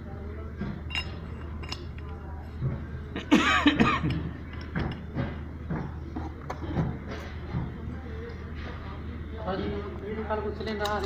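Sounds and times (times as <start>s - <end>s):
steady low hum: 0.0s - 11.0s
person coughing: 3.2s - 4.2s.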